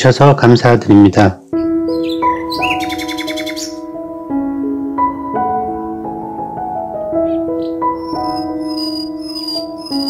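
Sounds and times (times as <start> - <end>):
soft keyboard music: 0.0 - 10.0
bird twittering: 1.6 - 3.8, 7.2 - 10.0.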